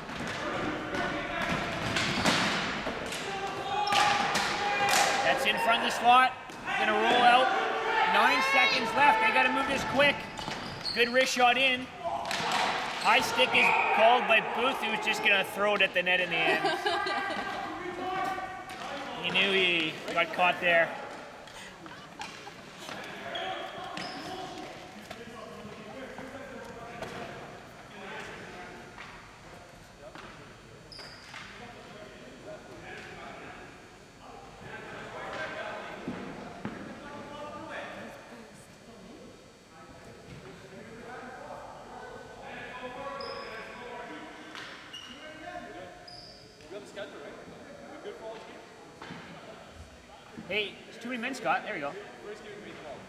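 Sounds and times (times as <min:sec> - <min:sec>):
players chattering: 0:00.0 - 0:53.0.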